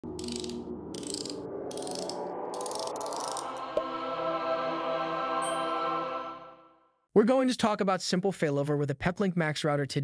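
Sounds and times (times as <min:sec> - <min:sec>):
intro music: 0:00.0 - 0:06.8
sustained musical tone: 0:00.5 - 0:06.9.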